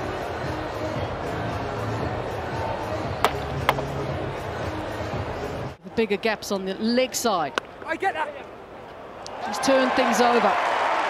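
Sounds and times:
cricket bat striking ball: 3.2s - 3.9s.

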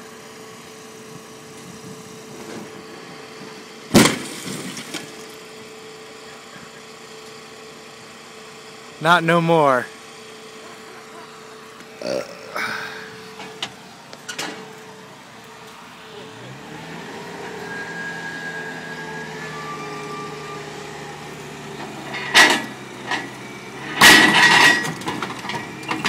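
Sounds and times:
forklift engine running: 0.0s - 26.0s.

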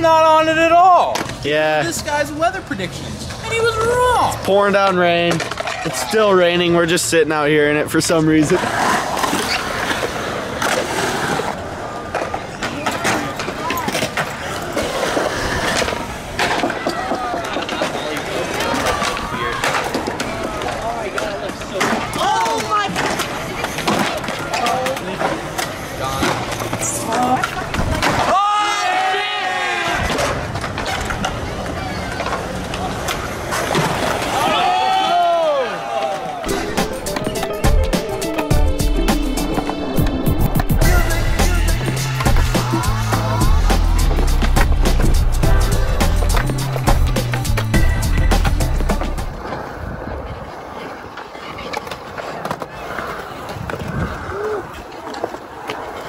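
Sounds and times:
skateboard wheels rolling on concrete: 0.0s - 56.0s
skateboard clacks: 8.5s - 28.7s, 30.0s - 35.0s, 36.0s - 49.7s, 50.5s - 56.0s
music with heavy bass beat: 36.5s - 49.3s.

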